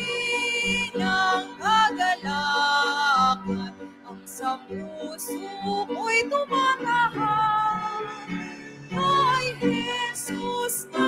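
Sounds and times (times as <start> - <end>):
woman singing a hymn: 0.0 - 8.3, 8.9 - 11.0
piano and keyboard: 0.0 - 11.0.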